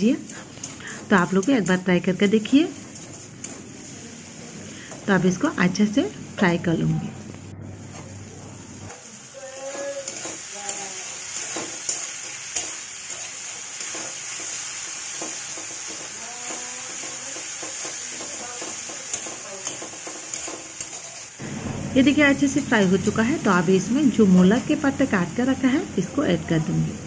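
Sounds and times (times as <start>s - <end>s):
food sizzling in oil: 0.0s - 6.6s, 7.8s - 27.0s
metal spatula scraping pan: 0.2s - 3.8s.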